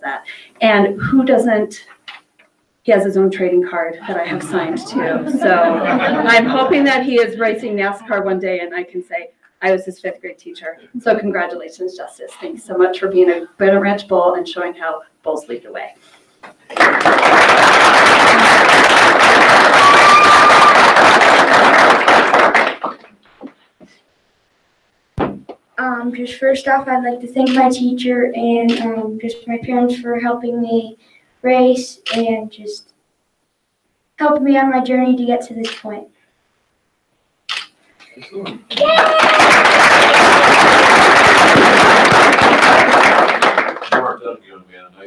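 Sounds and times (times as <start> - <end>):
audience applauding: 4.2 - 7.3, 16.6 - 23.2, 38.6 - 44.3.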